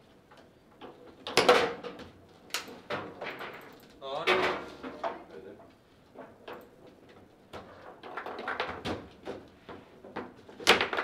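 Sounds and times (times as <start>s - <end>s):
foosball ball and rods clacking: 0.8s - 3.7s, 6.1s - 11.0s.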